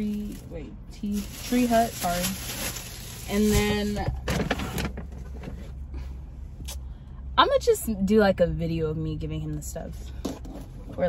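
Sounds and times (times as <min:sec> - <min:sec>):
steady low hum: 0:00.0 - 0:11.0
items rustling and knocking: 0:01.0 - 0:05.8.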